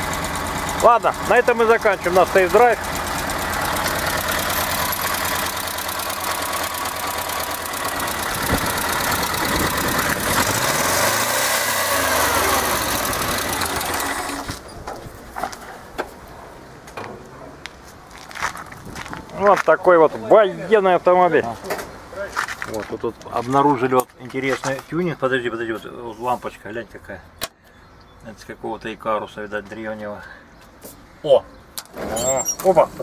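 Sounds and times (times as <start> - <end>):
engine running: 0.0 - 17.0.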